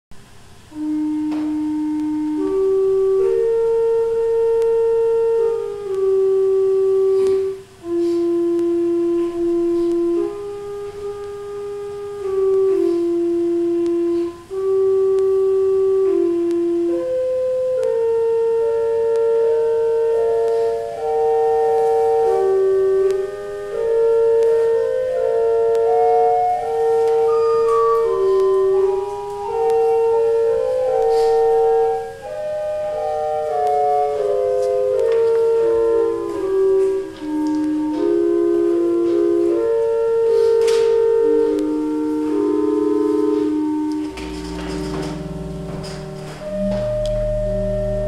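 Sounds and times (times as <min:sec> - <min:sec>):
organ chords: 0:00.2 - 0:48.0.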